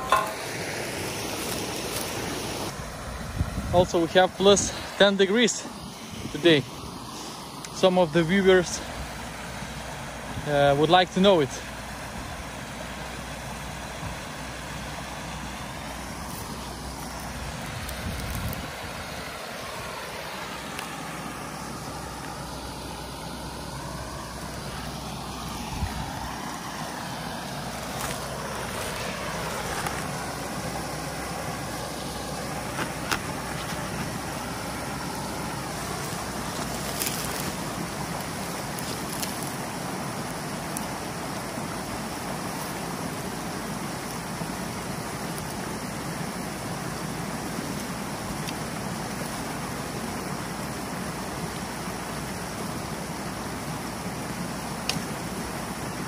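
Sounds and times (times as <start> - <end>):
water rushing over a drop: 0.0 - 56.0.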